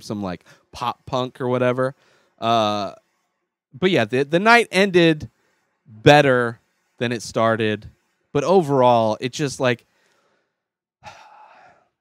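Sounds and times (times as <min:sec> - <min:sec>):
man sighing: 0:11.0 - 0:11.8.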